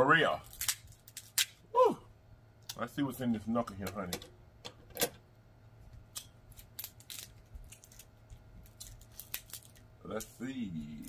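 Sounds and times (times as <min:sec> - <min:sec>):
crab shell cracking: 0:00.4 - 0:01.6, 0:06.1 - 0:09.9.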